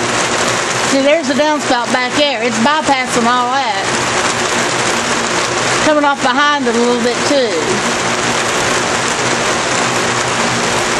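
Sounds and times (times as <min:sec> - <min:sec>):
steady rain: 0:00.0 - 0:10.9
water spilling off gutter: 0:00.0 - 0:10.9.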